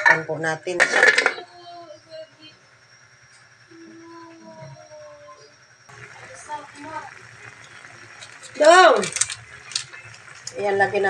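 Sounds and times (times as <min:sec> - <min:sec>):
drawn-out pitched sound: 0:01.6 - 0:11.0.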